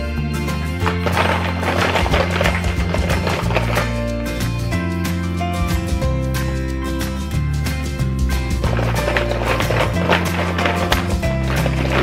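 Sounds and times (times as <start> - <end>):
light background music: 0.0 - 12.0
plastic toy eggs rummaged in tin: 0.8 - 4.1, 8.6 - 12.0.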